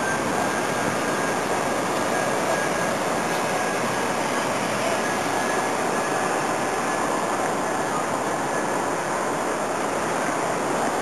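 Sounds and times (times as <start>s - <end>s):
rushing outdoor background noise: 0.0s - 11.0s.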